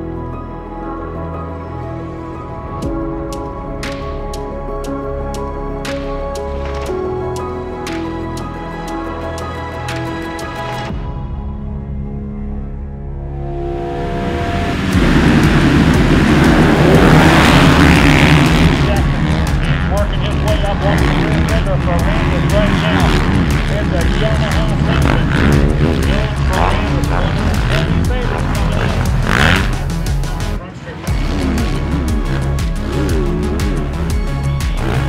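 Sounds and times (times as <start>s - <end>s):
background music: 0.0s - 35.0s
motocross bikes revving and racing: 14.2s - 35.0s.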